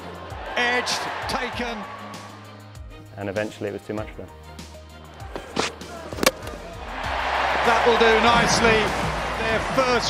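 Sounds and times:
background music: 0.0 - 10.0
cricket bat hitting ball: 5.6 - 6.7.

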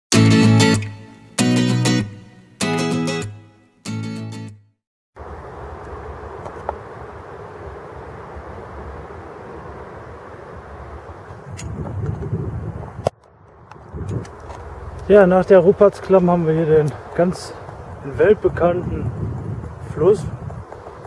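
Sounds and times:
acoustic guitar music: 0.1 - 4.7.

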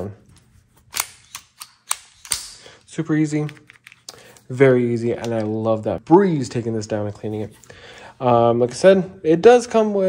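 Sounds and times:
metallic pistol action clicks: 0.9 - 2.6.

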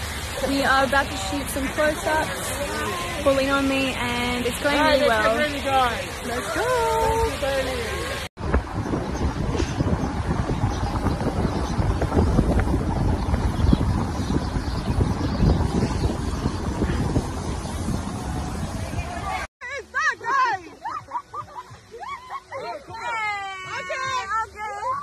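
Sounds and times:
car road and wind noise: 0.0 - 19.5.

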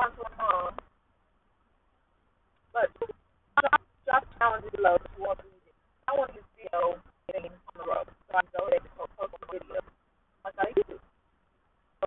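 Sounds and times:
woman talking over phone line: 0.0 - 0.8, 2.8 - 9.9, 10.5 - 11.0.

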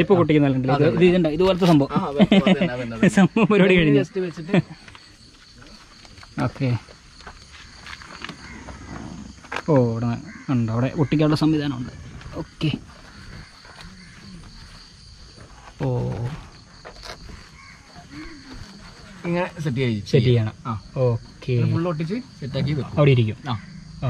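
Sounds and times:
crickets chirring: 0.0 - 24.0
man speaking: 19.2 - 23.6.

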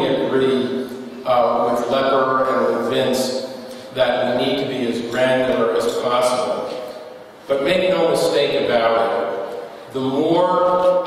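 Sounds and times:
man talking: 0.0 - 11.0.

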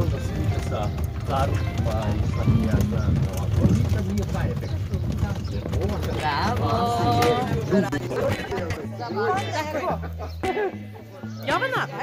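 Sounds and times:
vehicle rumbling and rattling: 0.0 - 8.4
voices talking: 0.0 - 12.0.

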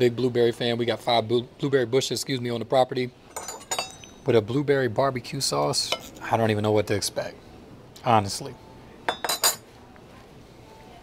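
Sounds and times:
cutlery clinking on ceramic plate: 3.3 - 4.2, 9.1 - 9.6.

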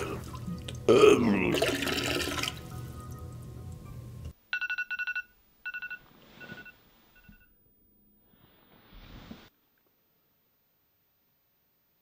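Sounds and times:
smartphone alarm beeps: 4.6 - 7.5
soft rustle: 8.3 - 10.1.

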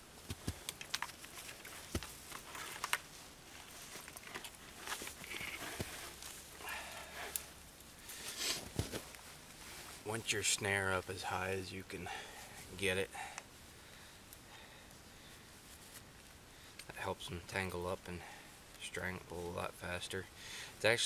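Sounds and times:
gloved hands brushing branches: 0.1 - 10.5, 14.3 - 16.4.

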